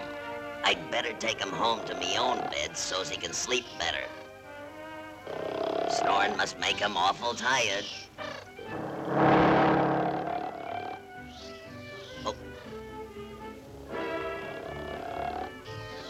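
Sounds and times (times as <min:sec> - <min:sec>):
orchestral background music: 0:00.0 - 0:16.0
cartoon snoring: 0:05.2 - 0:06.5, 0:08.2 - 0:11.6, 0:14.0 - 0:16.0.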